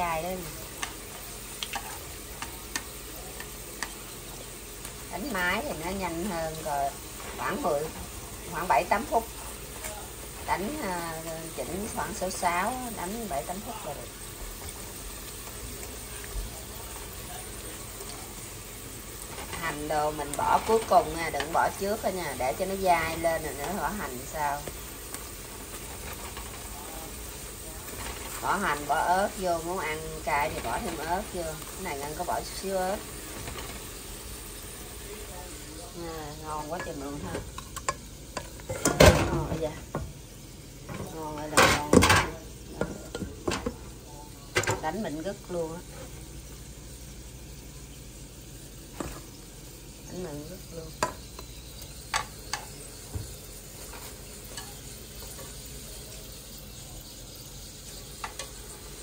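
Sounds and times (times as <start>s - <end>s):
fish cakes sizzling in oil: 0.0s - 59.0s.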